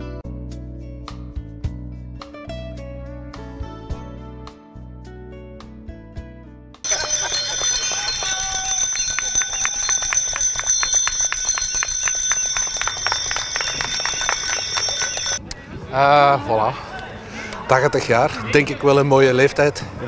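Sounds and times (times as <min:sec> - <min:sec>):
bicycle bells ringing: 0:06.8 - 0:15.4.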